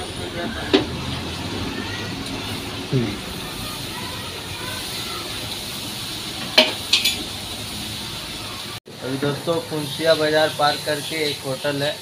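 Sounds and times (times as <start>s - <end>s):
road traffic hum: 0.0s - 12.0s.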